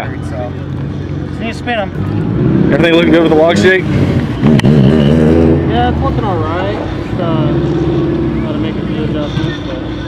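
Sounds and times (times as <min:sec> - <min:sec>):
faint voices talking: 0:05.4 - 0:10.0.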